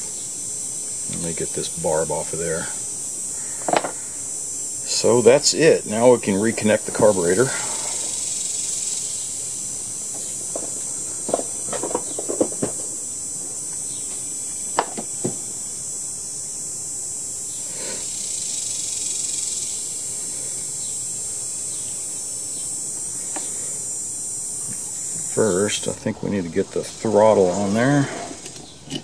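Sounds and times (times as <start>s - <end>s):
insects chirring: 0.0s - 29.0s.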